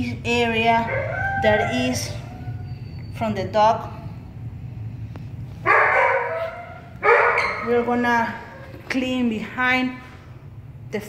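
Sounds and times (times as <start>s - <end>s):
dog barking: 5.7s - 7.8s.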